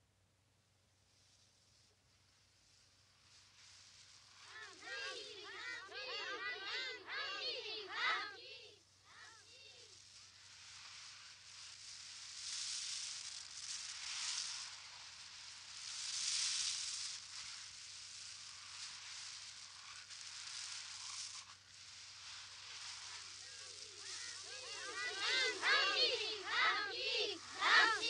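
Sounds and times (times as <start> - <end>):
high airy hiss: 0.7 - 28.0
faint voices: 4.4 - 9.9, 23.4 - 28.0.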